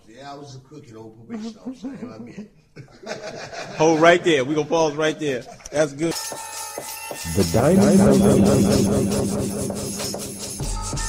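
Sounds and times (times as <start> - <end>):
held low synth tone: 7.2 - 11.0
repeating sweeping synth pattern: 7.2 - 11.0.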